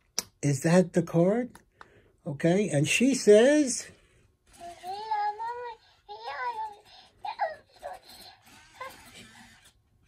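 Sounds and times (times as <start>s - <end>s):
electronic doll voice: 4.6s - 9.6s.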